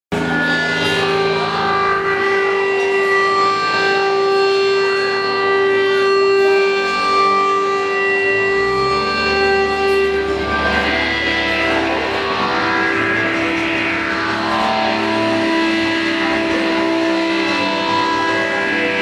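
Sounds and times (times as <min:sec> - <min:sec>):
droning electric guitar: 0:00.1 - 0:19.0.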